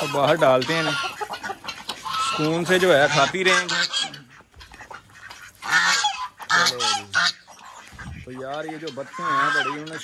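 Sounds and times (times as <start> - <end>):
ducks honking quacks: 0.0 - 10.0.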